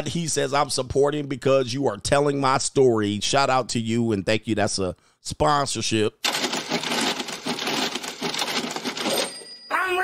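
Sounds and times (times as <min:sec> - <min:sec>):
coins jingling: 0:06.2 - 0:09.7.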